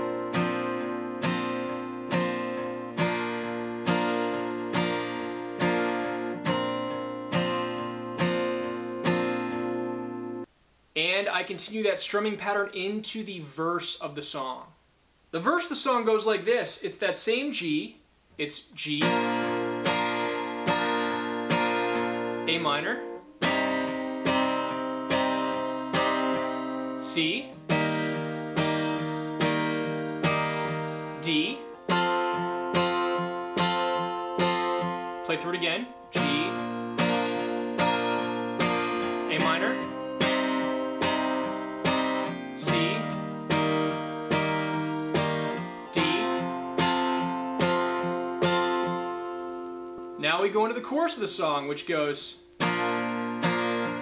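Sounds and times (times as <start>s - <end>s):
acoustic guitar strumming chord: 0.0s - 10.5s, 19.1s - 50.7s, 52.4s - 54.0s.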